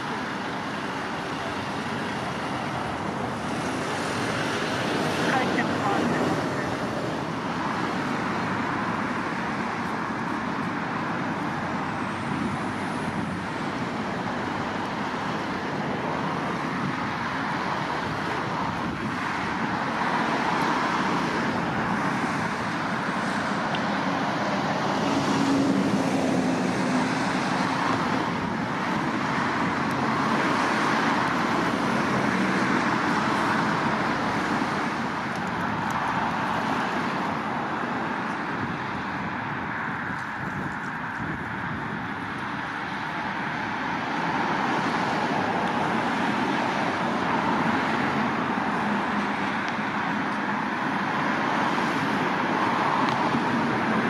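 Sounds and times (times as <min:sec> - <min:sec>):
road traffic: 0:00.0 - 0:54.0.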